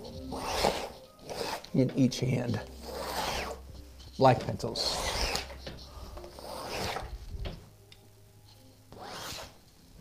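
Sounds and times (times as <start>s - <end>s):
pencils scraping on canvas: 0.0s - 7.3s, 8.5s - 9.6s.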